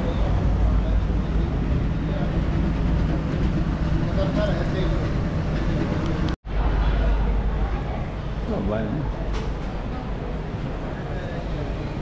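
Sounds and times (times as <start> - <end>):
faint voices of passers-by: 0.0 - 12.0
low street rumble: 0.0 - 12.0.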